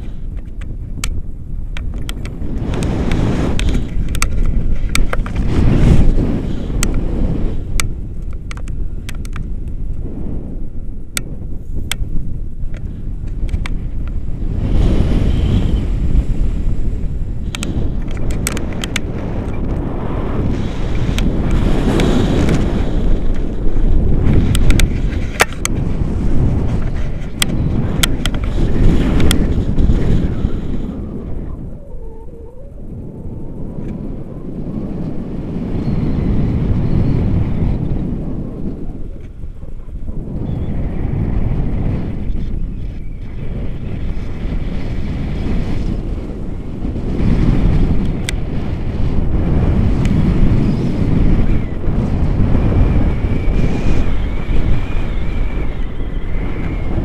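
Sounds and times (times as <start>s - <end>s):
wind rushing over microphone: 0.0s - 57.0s
sharp clicks: 7.7s - 10.0s.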